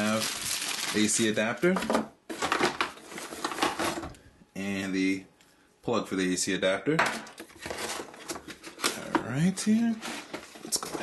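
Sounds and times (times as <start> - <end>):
plastic packaging crinkling: 0.0 - 1.7.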